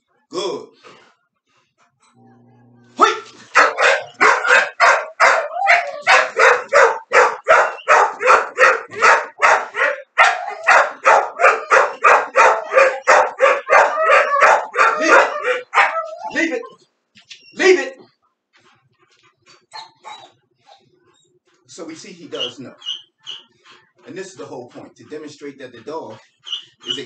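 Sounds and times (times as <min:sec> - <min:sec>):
dog barking loudly: 0:03.0 - 0:16.6.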